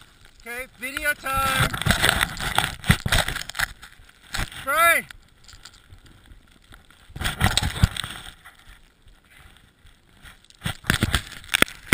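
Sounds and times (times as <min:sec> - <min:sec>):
skis scraping over snow: 0:00.0 - 0:05.0
wind buffeting microphone: 0:00.6 - 0:03.5.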